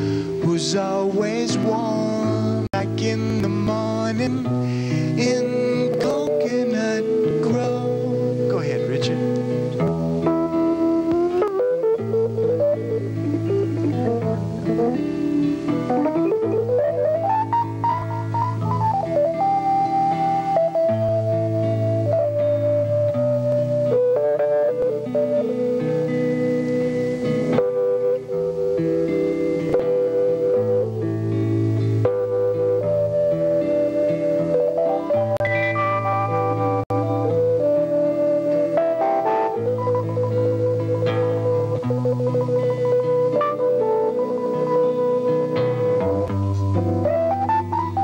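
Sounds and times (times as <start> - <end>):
bending lead melody: 0.0 - 48.0
guitar and bass accompaniment: 0.0 - 48.0.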